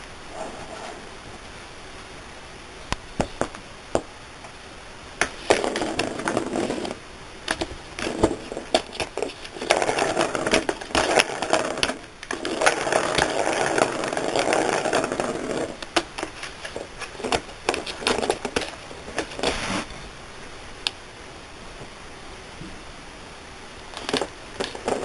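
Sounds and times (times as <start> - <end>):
cat scratching cardboard: 5.2 - 19.9, 24.0 - 25.0.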